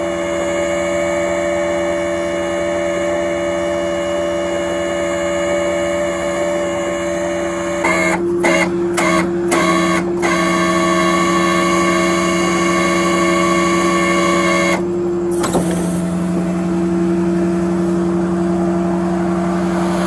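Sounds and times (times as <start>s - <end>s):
truck engine and winch droning: 0.0s - 20.0s.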